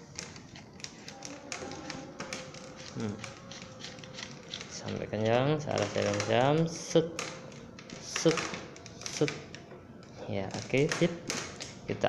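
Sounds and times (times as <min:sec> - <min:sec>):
plastic nut clicking and tapping: 0:10.5 - 0:11.8.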